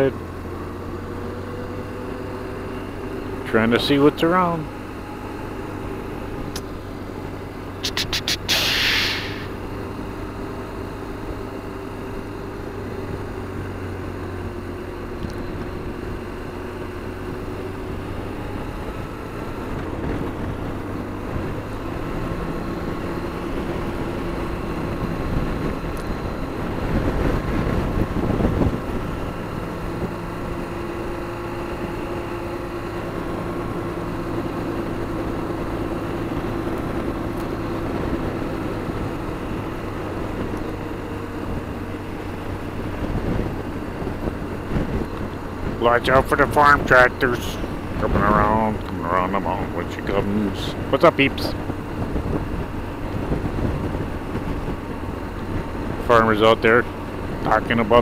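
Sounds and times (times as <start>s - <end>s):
motorcycle engine cruising: 0.0s - 58.0s
wind and road noise: 0.0s - 58.0s
rush of noise: 7.7s - 9.9s.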